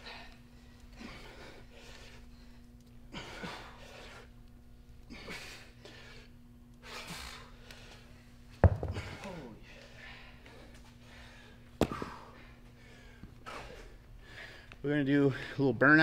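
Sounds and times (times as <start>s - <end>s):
heavy exhaled breaths: 0.0s - 4.3s, 8.9s - 15.7s
low steady hum: 0.0s - 16.0s.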